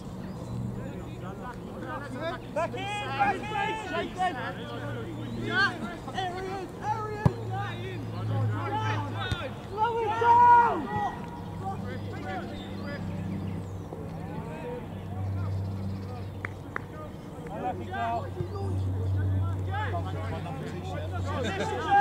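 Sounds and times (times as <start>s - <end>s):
footballers shouting: 0.8s - 13.6s, 14.2s - 22.0s.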